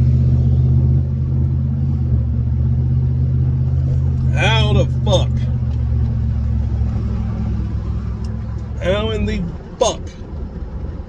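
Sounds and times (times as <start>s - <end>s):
car engine drone inside cabin: 0.0s - 11.0s.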